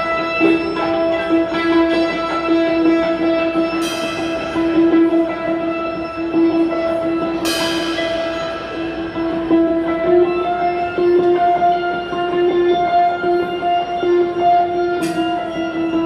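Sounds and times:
electric guitar sustained note: 0:00.0 - 0:16.0
drum cymbals: 0:03.7 - 0:05.5, 0:07.4 - 0:09.5
cymbal crash: 0:03.8 - 0:05.2, 0:07.4 - 0:09.7.

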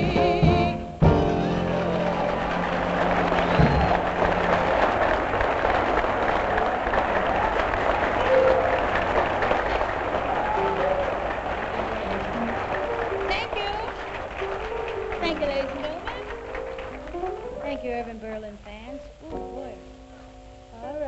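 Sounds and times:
audience applauding: 0:01.2 - 0:18.7.

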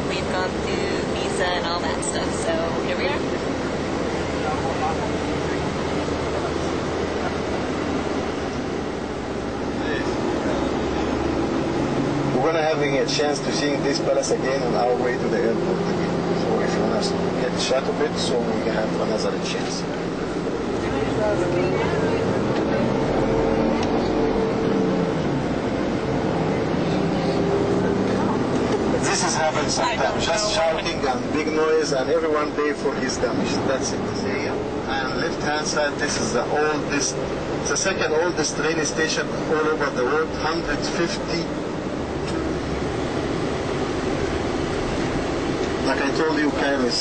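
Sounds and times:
moving bus noise: 0:00.0 - 0:47.0
men shouting and arguing: 0:27.4 - 0:41.5.

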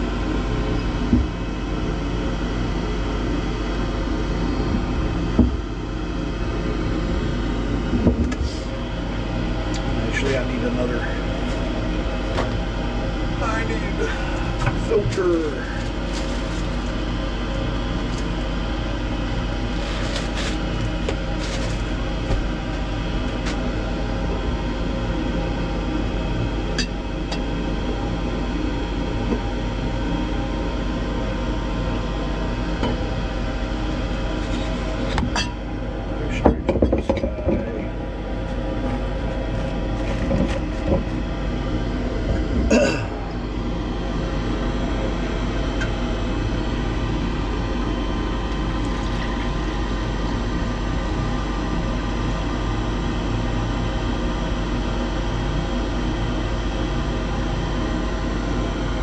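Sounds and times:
machine hum: 0:00.0 - 0:59.0.

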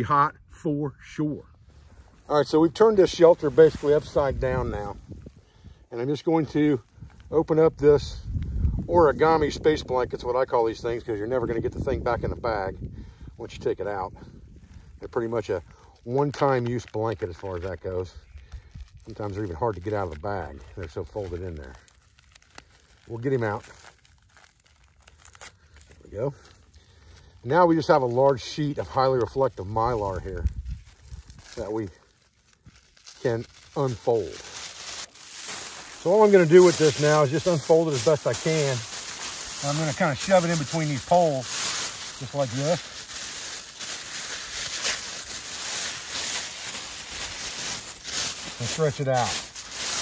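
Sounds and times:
space blanket crinkling: 0:01.9 - 0:07.6, 0:15.0 - 0:50.0
plastic crackles: 0:06.0 - 0:10.0, 0:14.4 - 0:50.0.

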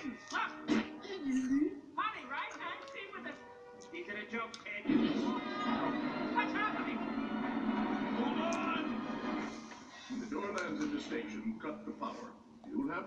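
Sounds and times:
film soundtrack music: 0:00.0 - 0:11.7.

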